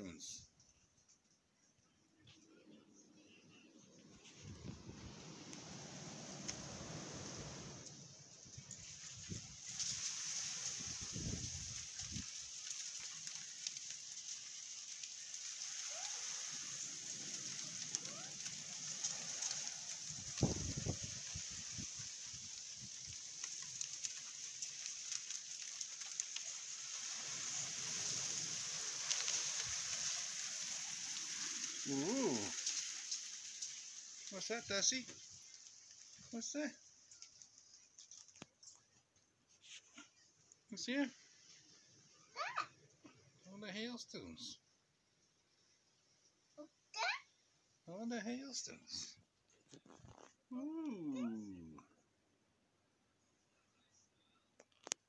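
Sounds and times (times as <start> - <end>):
hailstones pattering on paving: 3.3 - 39.1.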